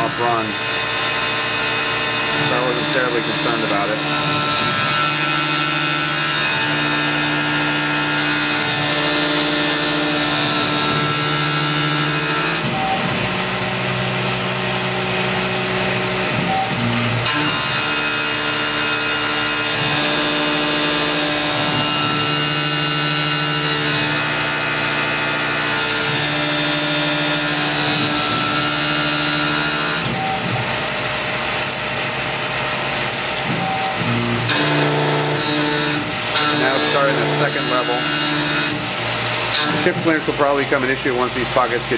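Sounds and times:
coolant hiss: 0:00.0 - 0:41.9
mill cutting metal: 0:00.0 - 0:41.9
machine tones changing pitch: 0:27.8 - 0:30.9, 0:32.7 - 0:41.9.

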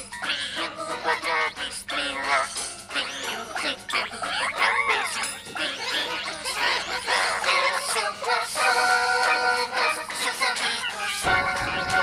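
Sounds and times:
warbling pitch-shifted music: 0:00.0 - 0:12.0
warbling pitch-shifted voices: 0:00.0 - 0:12.0.

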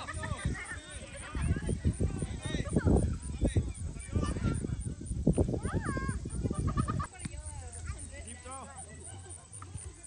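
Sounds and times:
wind buffeting microphone: 0:00.0 - 0:08.4.

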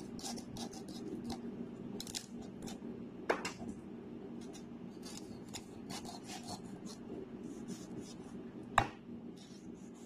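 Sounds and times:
knife scraping beetroot skin: 0:00.0 - 0:01.4, 0:04.5 - 0:07.0
low steady hum: 0:00.0 - 0:10.0.

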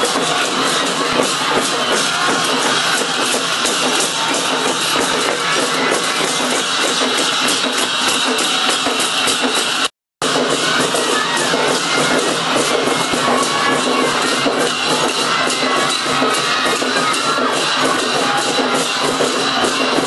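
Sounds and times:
drums: 0:00.0 - 0:20.0
rapid cymbal clashes: 0:00.0 - 0:20.0.

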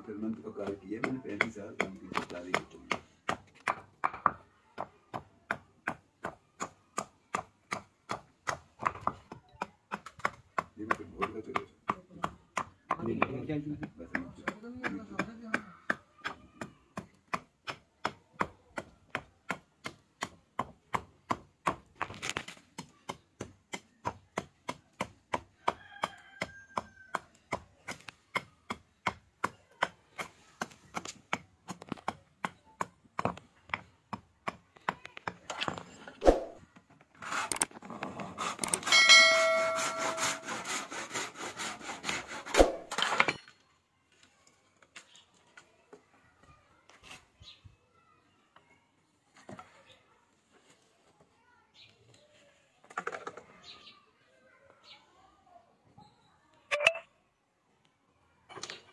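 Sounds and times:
hatchet chopping wood: 0:00.6 - 0:35.6, 0:39.6 - 0:43.4.

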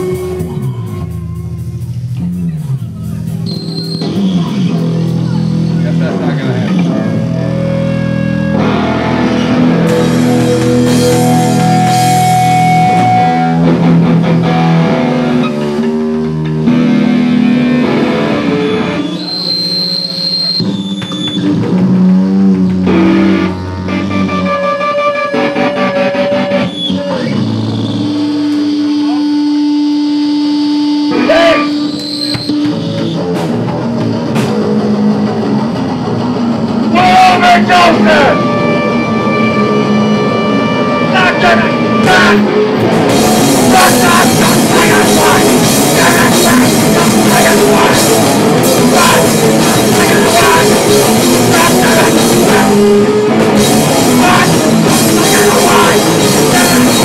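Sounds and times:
bass guitar sustained notes: 0:00.0 - 0:57.0
electric guitar sustained notes: 0:00.0 - 0:57.0.

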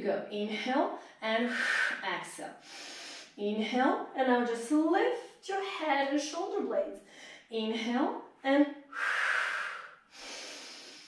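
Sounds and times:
woman breathing hard: 0:02.6 - 0:03.4, 0:08.9 - 0:11.0.

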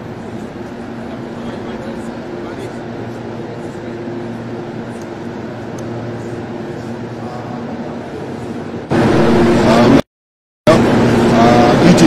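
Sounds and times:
machinery hum: 0:00.0 - 0:10.0, 0:10.7 - 0:12.0.

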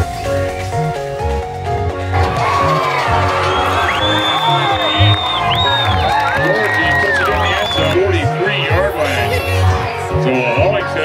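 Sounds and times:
music with steady beat: 0:00.0 - 0:11.0
crowd cheering and whooping: 0:02.1 - 0:08.3
long high calls: 0:03.4 - 0:08.0.

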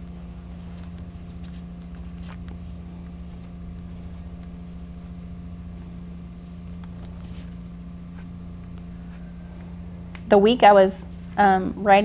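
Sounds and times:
hands rustling paper on mat: 0:00.0 - 0:09.7
low electrical hum: 0:00.0 - 0:12.0.

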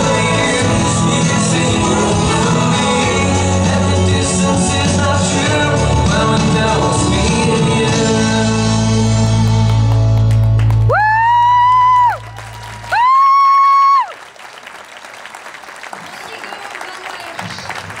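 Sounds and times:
latin dance music: 0:00.0 - 0:10.6
audience applause: 0:09.2 - 0:18.0.

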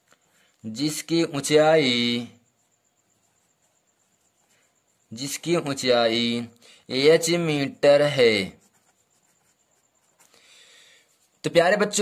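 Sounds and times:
faint high whine: 0:00.0 - 0:12.0
person speaking: 0:00.6 - 0:02.4, 0:03.2 - 0:10.2, 0:11.2 - 0:12.0.

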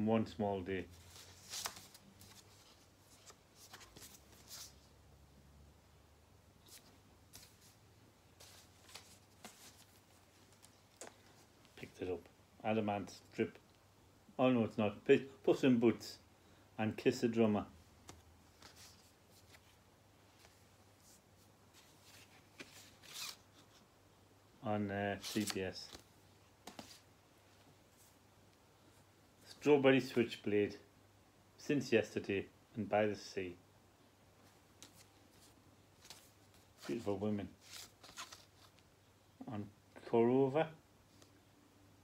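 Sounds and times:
paper sleeve rustling: 0:00.9 - 0:04.9, 0:08.4 - 0:11.5, 0:20.4 - 0:23.8, 0:25.1 - 0:27.1, 0:34.8 - 0:38.8.

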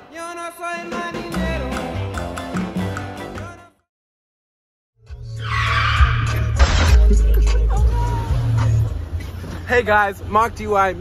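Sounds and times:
car tires screeching: 0:05.3 - 0:07.0
heavy low bass: 0:06.0 - 0:09.2.

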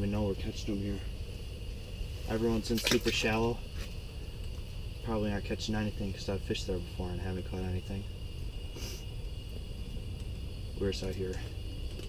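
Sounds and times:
faint high-pitched whine: 0:00.0 - 0:12.0
steady low hum: 0:00.0 - 0:12.0
short hiss: 0:08.7 - 0:09.2.

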